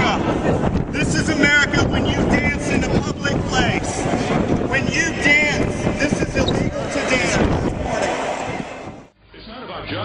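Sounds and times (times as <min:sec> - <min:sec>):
indistinct voices: 0:00.0 - 0:09.1
loud rushing noise: 0:00.0 - 0:09.1.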